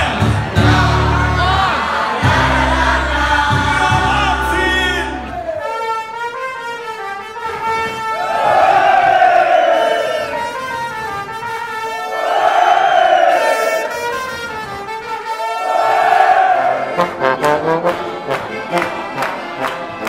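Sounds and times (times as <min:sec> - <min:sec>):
crowd shouting: 0:00.0 - 0:05.9, 0:08.1 - 0:10.5, 0:11.9 - 0:14.0, 0:15.3 - 0:17.2
brass band sustained notes: 0:00.0 - 0:20.0.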